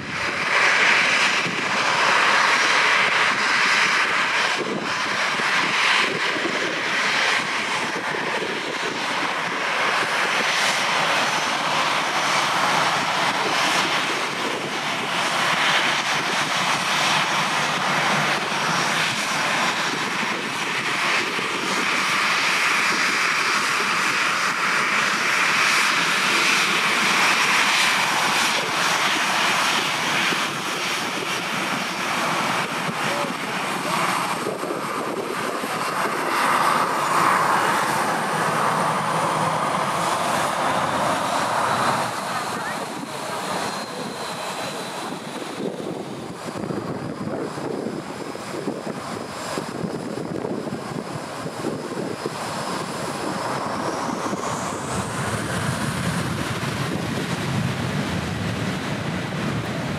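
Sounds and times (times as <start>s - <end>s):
faint high engine whine: 0.0s - 59.9s
jet engines running: 0.0s - 59.9s.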